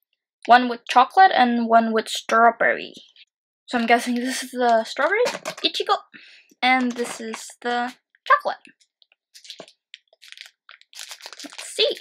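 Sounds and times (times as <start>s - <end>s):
plastic wrapper crinkling: 6.8s - 7.6s, 9.4s - 12.0s.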